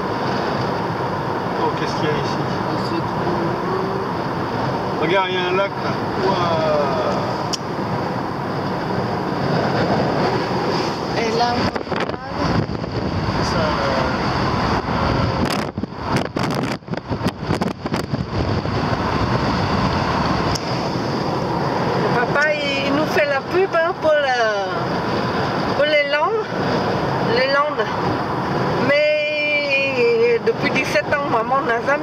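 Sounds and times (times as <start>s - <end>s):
car road and wind noise: 0.0s - 32.0s
wind gusts on microphone: 5.9s - 31.3s.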